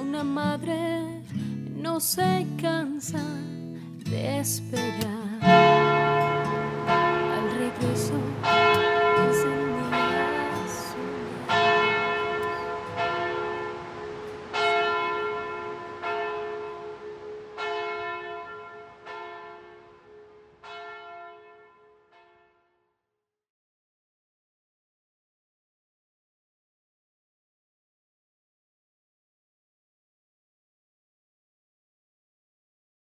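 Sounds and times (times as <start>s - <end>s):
church bell tolling: 5.4s - 22.6s.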